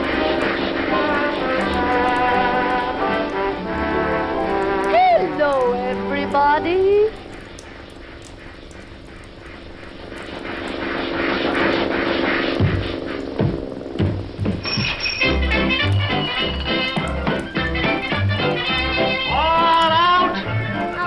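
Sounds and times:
rushing noise: 0:00.0 - 0:05.5, 0:07.1 - 0:21.0
held orchestral chord: 0:00.0 - 0:06.9, 0:15.2 - 0:21.0
bouncy orchestral tune with bass: 0:15.2 - 0:21.0.

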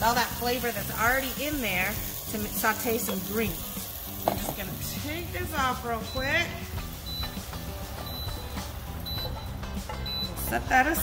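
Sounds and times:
induction hob beeping: 0:05.9 - 0:10.5.

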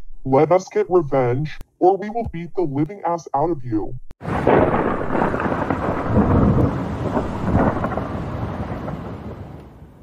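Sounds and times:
rumble of thunder: 0:04.2 - 0:09.9.

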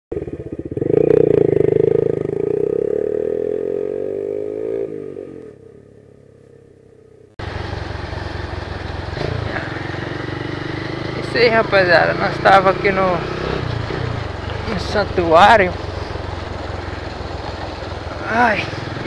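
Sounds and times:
motorcycle accelerating: 0:00.1 - 0:19.0
road and wind noise: 0:00.1 - 0:19.0.

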